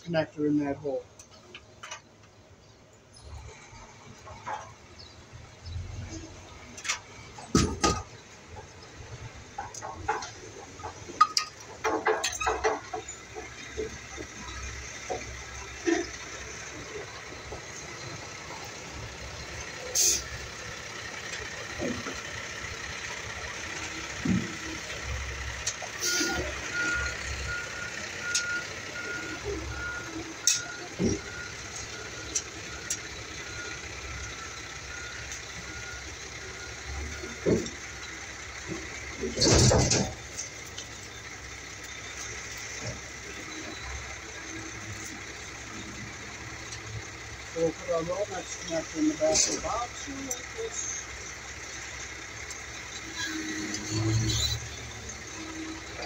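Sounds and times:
outdoor background hum: 0.0s - 56.0s
vehicle reversing alarm beeping: 5.3s - 56.0s.

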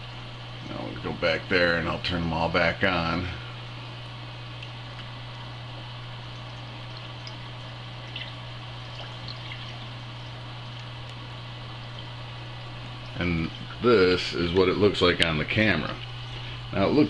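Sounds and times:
constant low hum: 0.0s - 17.0s
water trickling: 3.8s - 16.6s.

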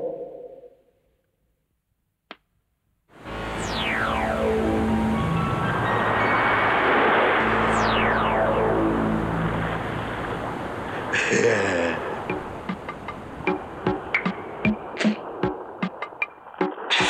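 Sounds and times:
held low synth tones: 3.2s - 6.8s, 7.4s - 11.2s, 12.0s - 14.9s
synthesizer descending glides: 3.2s - 11.2s
dense steady synth wash: 3.2s - 15.0s.

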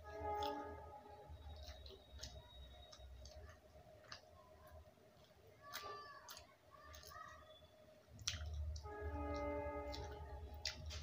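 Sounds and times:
mouth clicks and lip smacks: 8.2s - 8.9s.

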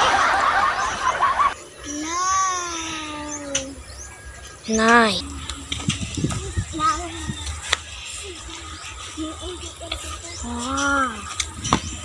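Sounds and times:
laughter: 0.0s - 1.6s.

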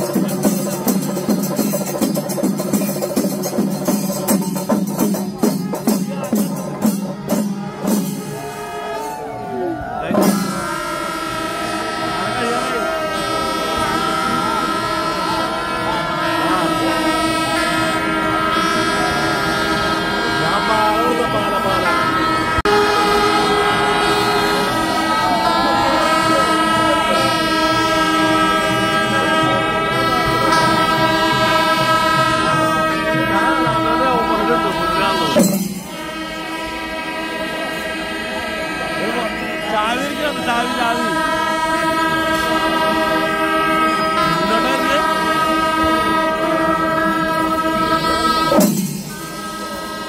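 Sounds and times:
crowd voices: 0.0s - 50.0s
horns holding long notes: 0.0s - 50.0s.

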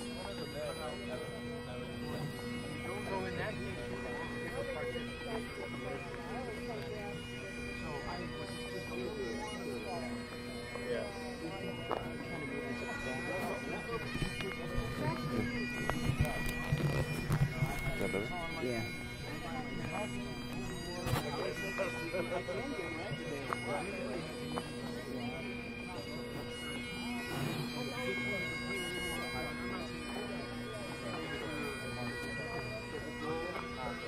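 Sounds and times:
bagpipe playing: 0.0s - 34.0s
indistinct voices talking: 0.0s - 34.0s.

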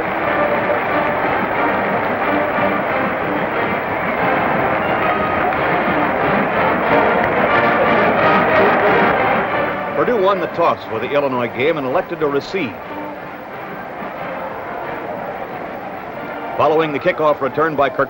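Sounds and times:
marching band music: 0.0s - 18.0s.

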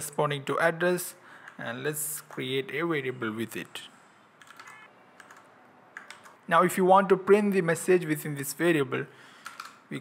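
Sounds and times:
faint keyboard typing: 4.4s - 6.4s, 9.4s - 9.8s.

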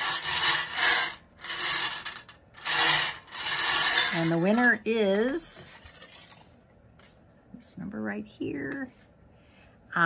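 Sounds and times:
balls rattling in wire cage: 0.0s - 5.0s.

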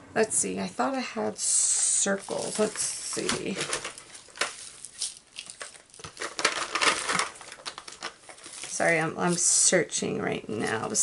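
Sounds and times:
packaging crinkling and rustling: 1.8s - 9.6s.

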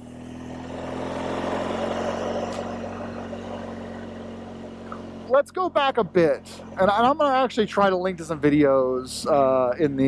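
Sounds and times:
motorcycle engine running: 0.0s - 10.0s
wind and road noise: 0.0s - 10.0s.

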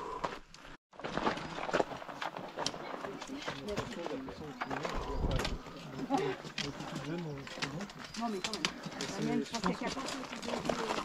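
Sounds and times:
footsteps and poles striking rock: 0.0s - 11.0s
group of people talking: 2.7s - 11.0s.

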